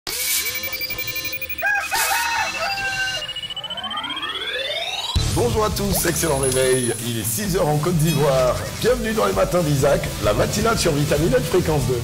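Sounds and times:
rising electronic tone: 0.2 - 7.0
rooster crowing: 1.5 - 3.4.

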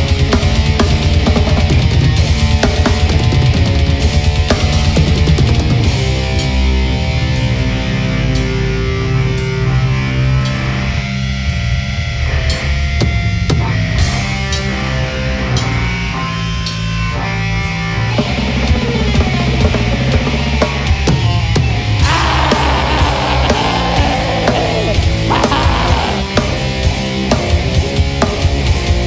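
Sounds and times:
metal band playing: 0.0 - 11.6, 12.2 - 29.0.

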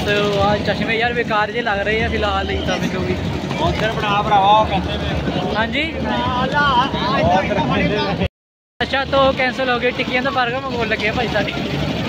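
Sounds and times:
crowd hubbub: 0.0 - 12.0
voices talking: 0.0 - 12.0.

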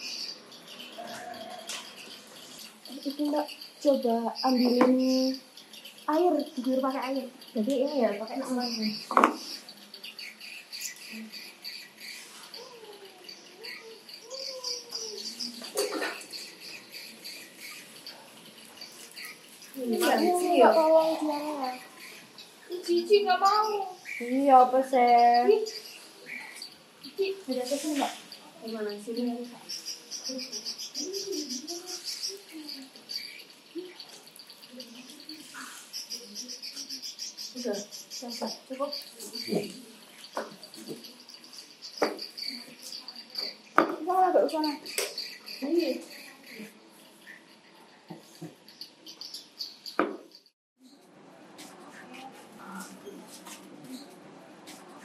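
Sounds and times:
high-pitched chirping: 0.0 - 51.0
faint low voices: 50.8 - 55.0.

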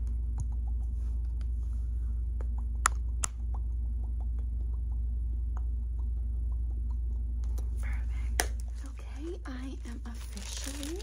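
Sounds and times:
nails ticking and tapping: 0.0 - 1.5, 2.4 - 7.7, 8.3 - 10.0
steady low hum: 0.0 - 11.0.

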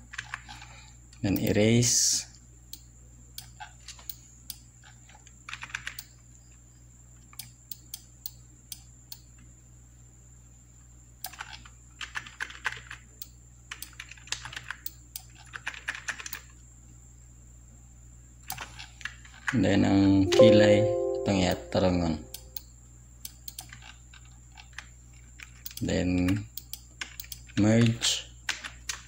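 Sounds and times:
faint high whine: 19.6 - 22.6.

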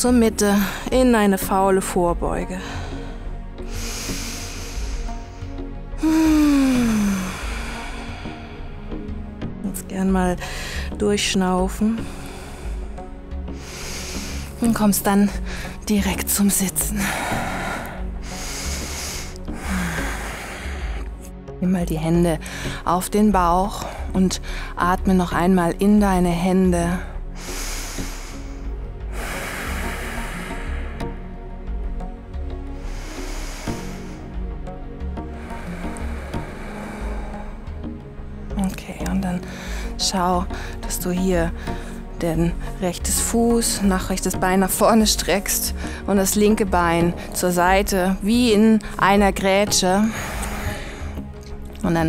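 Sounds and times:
soft background music: 0.0 - 52.0
woman breathing deeply: 2.6 - 9.5, 12.0 - 14.6, 17.0 - 21.2, 27.1 - 38.6, 50.1 - 51.6
woman sighing: 6.0 - 7.6.

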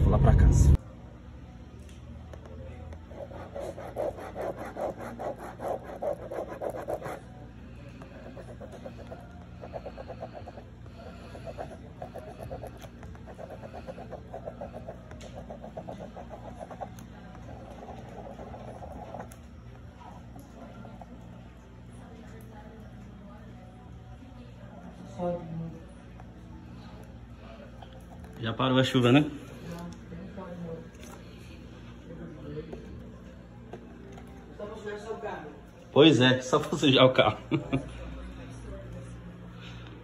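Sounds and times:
pen scribbling on cardboard: 3.1 - 7.2, 8.2 - 19.4.

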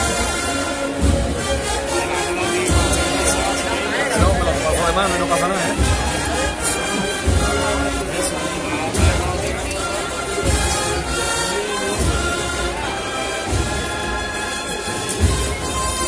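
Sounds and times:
brass band slow march: 0.0 - 16.0
crowd chatter: 0.0 - 16.0
bass drum beat: 2.7 - 3.6, 4.2 - 8.1.

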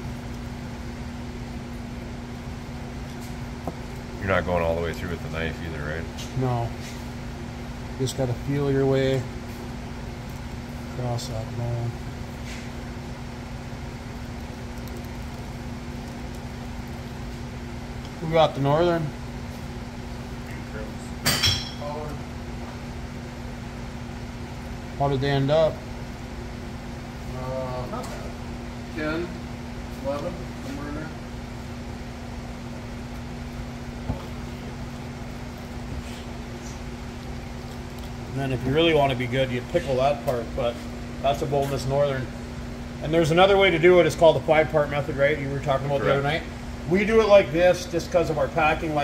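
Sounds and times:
machine hum: 0.0 - 49.0.

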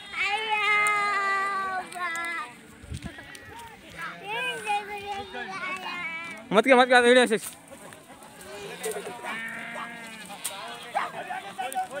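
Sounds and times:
goat or sheep bleating: 0.0 - 6.4, 8.3 - 12.0.

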